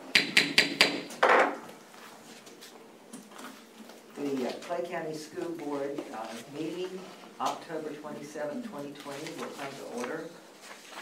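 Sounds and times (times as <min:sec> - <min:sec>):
gavel knocks: 0:00.1 - 0:01.6
rustling: 0:05.4 - 0:11.0.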